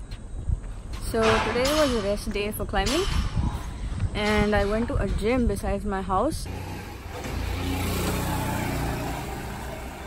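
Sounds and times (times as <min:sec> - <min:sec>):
vehicle passing: 0:06.5 - 0:10.0.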